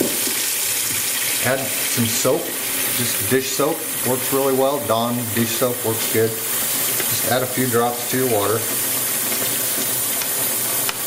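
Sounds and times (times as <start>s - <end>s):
tap water pouring into bowl: 0.0s - 7.5s.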